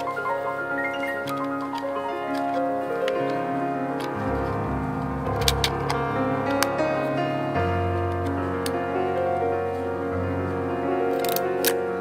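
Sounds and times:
soft piano music: 0.0 - 12.0.

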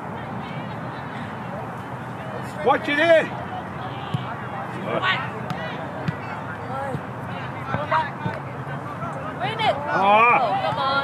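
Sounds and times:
open-air background noise: 0.0 - 11.0.

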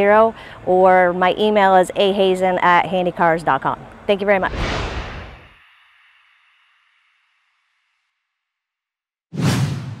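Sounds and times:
loud whoosh with deep low part: 4.4 - 5.6
whoosh sound effect: 4.4 - 5.6.

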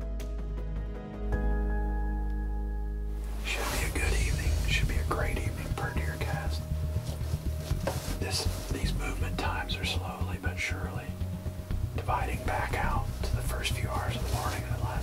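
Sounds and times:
low steady rumble: 3.2 - 15.0
man whispering: 3.4 - 6.7, 8.2 - 11.1, 12.0 - 15.0.

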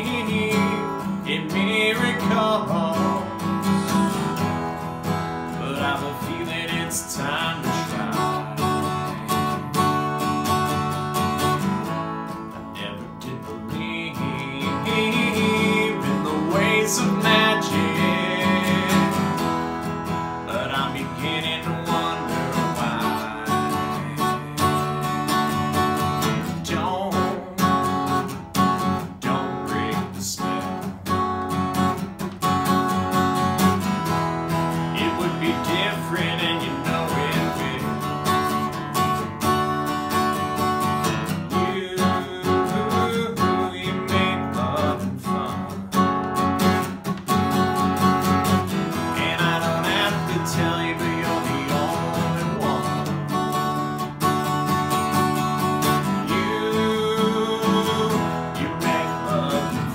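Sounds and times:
acoustic guitar strumming: 0.0 - 59.9.

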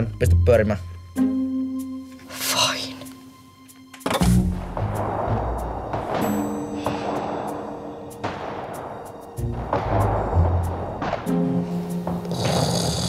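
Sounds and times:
dramatic film music: 0.0 - 13.0
heavy booms: 4.3 - 13.0.

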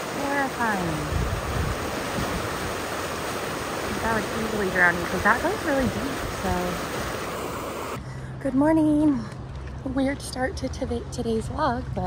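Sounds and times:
floodwater rushing: 0.0 - 8.0.

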